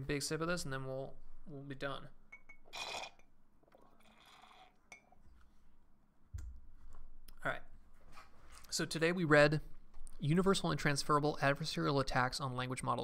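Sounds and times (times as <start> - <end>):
drinking vessel clinking: 2.3 - 3.3
person sipping a drink: 2.7 - 5.2.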